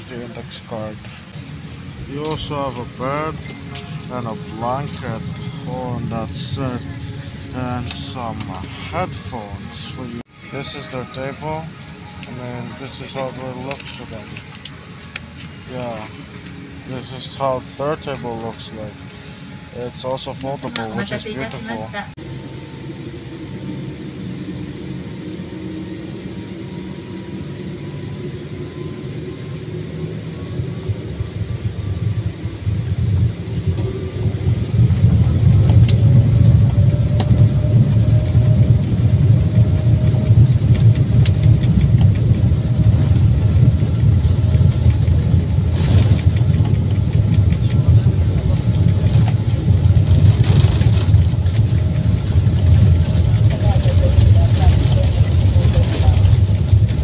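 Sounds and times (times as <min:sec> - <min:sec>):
jet engines spooling up: 0:00.0 - 0:57.0
low jet engine rumble: 0:00.0 - 0:57.0.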